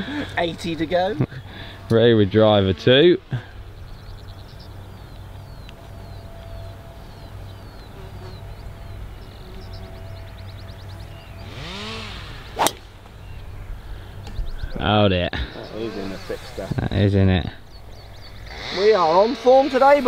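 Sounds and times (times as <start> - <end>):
golf club swing whoosh: 12.3 - 13.0
golf club striking ball: 12.5 - 13.1.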